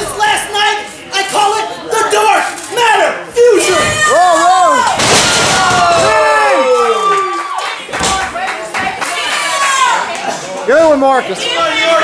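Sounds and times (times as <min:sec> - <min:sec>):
spectators yelling: 0:02.9 - 0:07.6.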